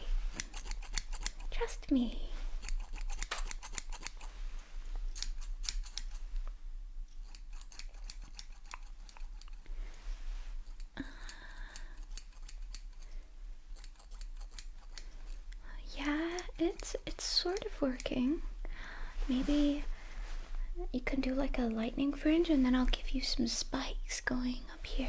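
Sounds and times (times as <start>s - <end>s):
metal scissors snipping: 0.3s - 1.5s, 2.6s - 4.3s, 5.1s - 6.2s, 7.2s - 9.6s, 11.7s - 13.1s, 13.7s - 15.3s.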